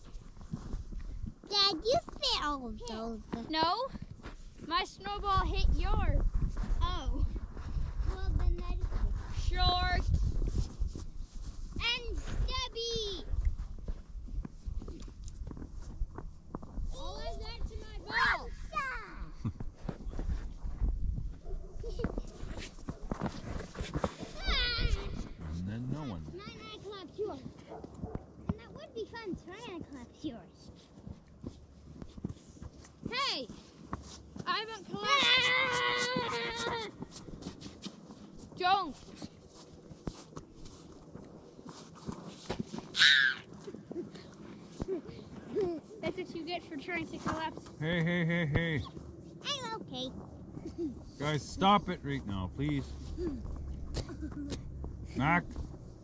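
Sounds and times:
children shouting and squealing: 0:24.2 - 0:25.4, 0:34.8 - 0:37.1, 0:42.8 - 0:44.1.

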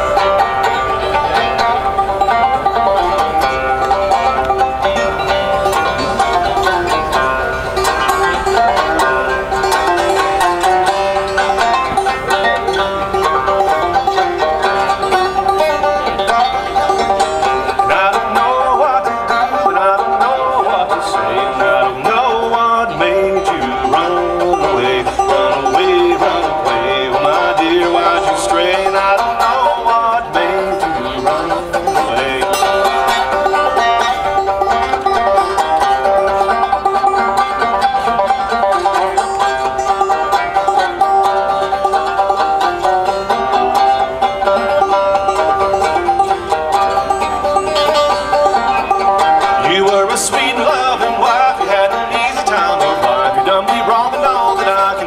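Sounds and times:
banjo playing: 0:00.0 - 0:55.0.

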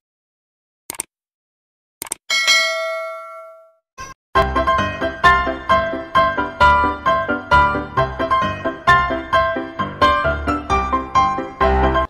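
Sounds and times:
notification bell chime: 0:02.3 - 0:03.7.

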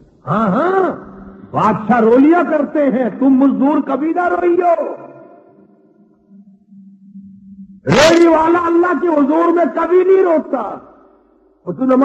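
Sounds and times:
man's voice echoing in hall: 0:00.0 - 0:06.0, 0:07.8 - 0:12.0
faint low hum: 0:00.0 - 0:12.0.

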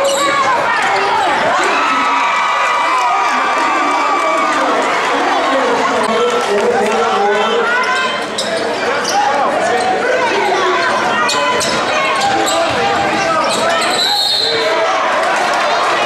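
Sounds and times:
people shouting in a gym: 0:00.0 - 0:05.6, 0:07.2 - 0:16.0.

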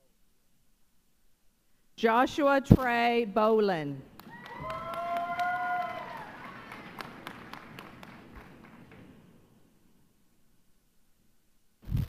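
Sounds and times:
audience clapping: 0:04.1 - 0:09.3
person whooping: 0:04.3 - 0:06.4.

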